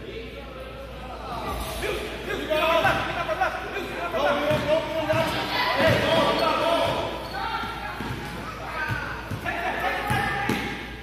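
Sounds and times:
basketball bouncing on gym floor: 4.4s - 7.1s, 7.9s - 10.9s.

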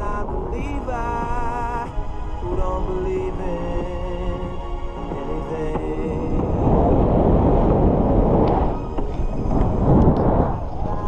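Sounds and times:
wind buffeting microphone: 0.0s - 11.0s
faint clicks: 8.4s - 11.0s.

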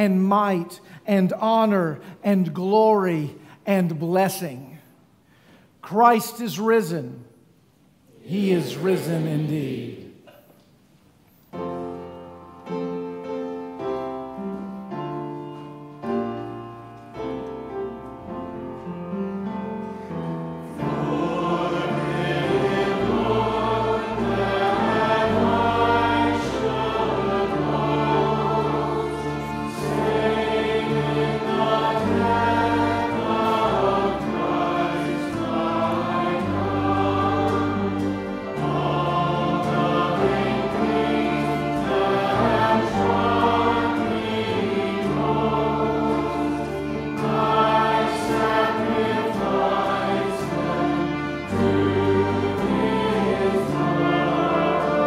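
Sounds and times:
congregation singing a hymn: 0.0s - 4.8s, 8.1s - 10.5s, 11.5s - 55.0s
keyboard accompaniment: 11.4s - 55.0s.

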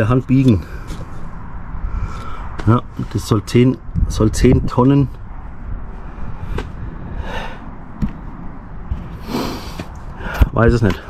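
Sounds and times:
low steady rumble: 0.0s - 11.0s
man breathing into microphone: 0.6s - 2.6s, 6.2s - 7.8s, 9.1s - 10.5s.

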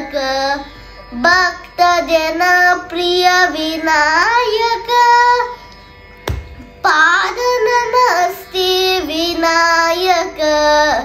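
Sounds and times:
boy singing: 0.0s - 5.6s, 6.8s - 11.0s.

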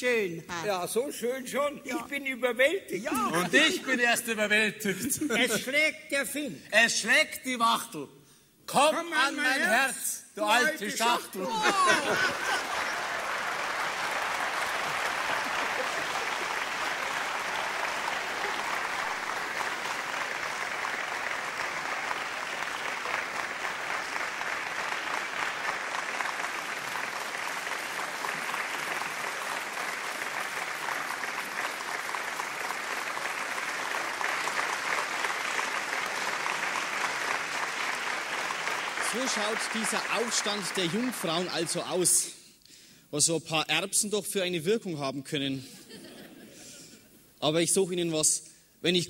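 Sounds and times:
audience applauding: 3.1s - 3.9s, 10.5s - 42.2s.

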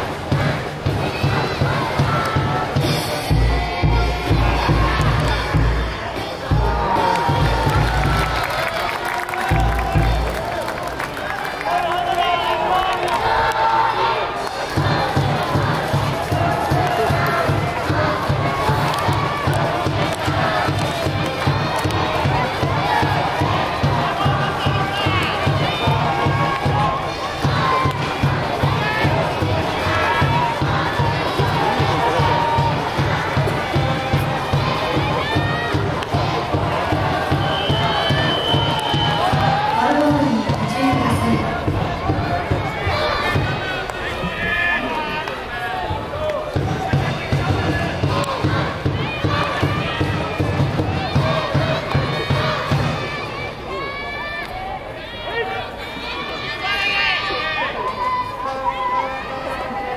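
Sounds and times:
steady drum beat: 0.0s - 8.7s, 9.4s - 10.5s, 14.7s - 44.4s, 46.5s - 53.2s
crowd chanting and shouting: 0.0s - 59.9s.

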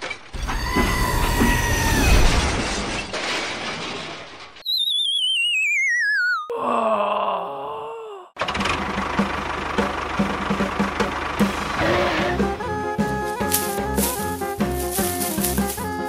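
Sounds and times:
falling wobbling whistle: 4.6s - 6.5s
busy music with beat: 12.6s - 16.0s.

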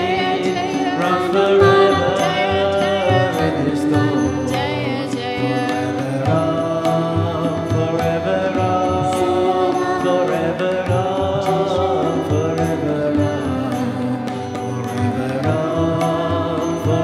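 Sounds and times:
harmonium: 0.0s - 17.0s
person singing devotional song: 0.0s - 17.0s
tabla: 0.0s - 17.0s.

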